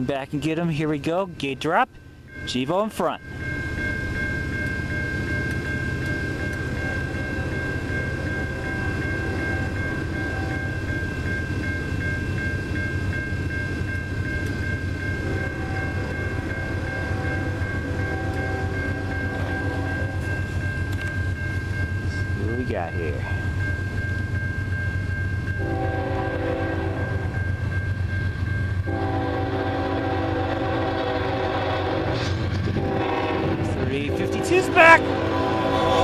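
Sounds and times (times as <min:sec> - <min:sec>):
railroad crossing bell ringing: 0:00.0 - 0:36.0.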